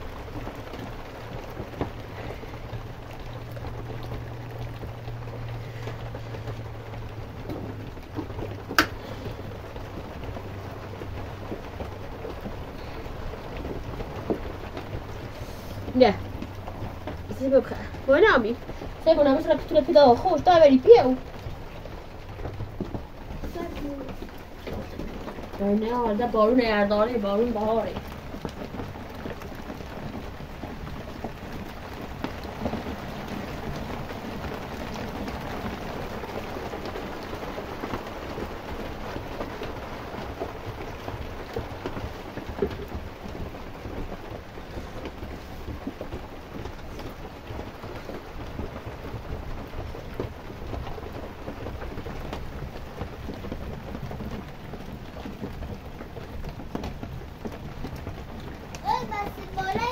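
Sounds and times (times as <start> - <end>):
rain falling on wet ground: 0.0 - 59.9.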